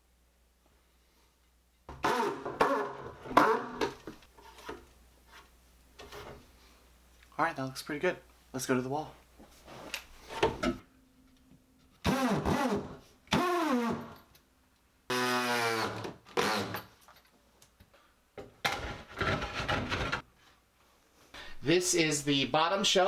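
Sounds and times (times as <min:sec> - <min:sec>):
cordless drill driving screws: 0:15.1 - 0:16.8.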